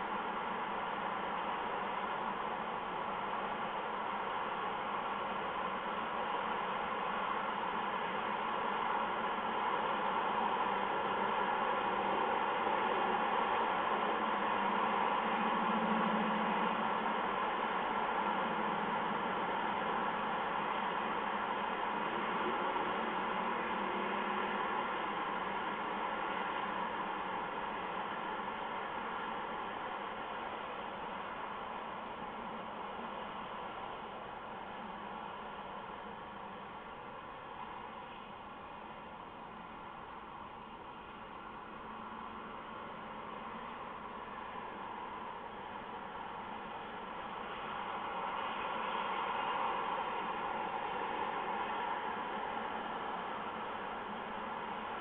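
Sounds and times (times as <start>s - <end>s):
steady hiss: 0.0s - 55.0s.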